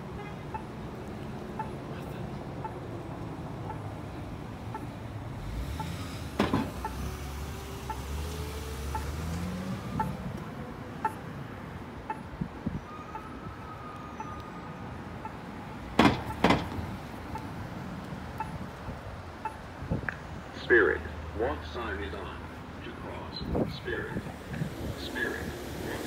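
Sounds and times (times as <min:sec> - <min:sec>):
street traffic: 0:00.0 - 0:26.0
pedestrian signal ticking: 0:00.4 - 0:20.2
engine rising in pitch: 0:05.4 - 0:10.3.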